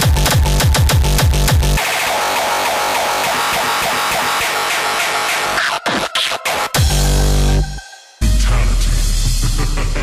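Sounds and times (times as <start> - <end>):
fast heavy kick drum: 0.0 - 1.8
synth breakdown: 1.8 - 10.0.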